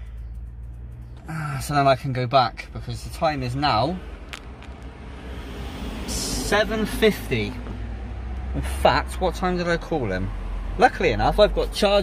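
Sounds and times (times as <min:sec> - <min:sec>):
steady low rumble: 0:00.0 - 0:10.1
vehicle approaching on road: 0:00.0 - 0:12.0.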